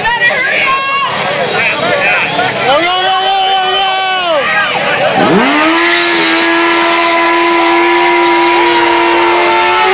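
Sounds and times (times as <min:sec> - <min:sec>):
motorcycle engine revving high: 0:05.0 - 0:09.9.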